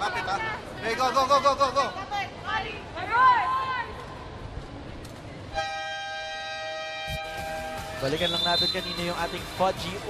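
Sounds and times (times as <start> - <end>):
arena crowd noise: 0.0 - 5.6.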